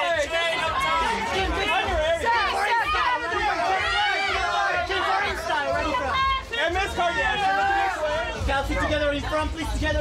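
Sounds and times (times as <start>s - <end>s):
people shouting and chattering: 0.0s - 10.0s.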